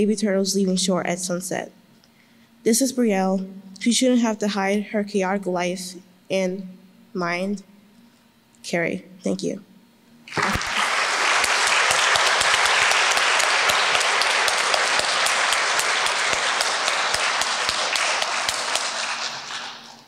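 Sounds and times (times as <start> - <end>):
audience applauding: 10.3 - 20.0.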